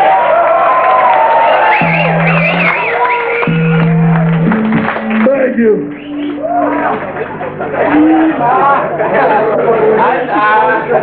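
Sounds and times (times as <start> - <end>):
crowd noise: 0.0 - 11.0
loud guitars and bass: 1.7 - 11.0.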